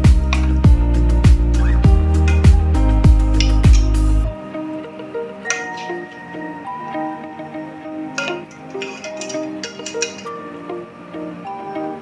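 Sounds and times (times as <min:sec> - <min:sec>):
instrumental background music: 0:00.0 - 0:12.0
metal tongs clinking against bowl: 0:03.4 - 0:04.0, 0:05.5 - 0:06.0, 0:08.2 - 0:10.4.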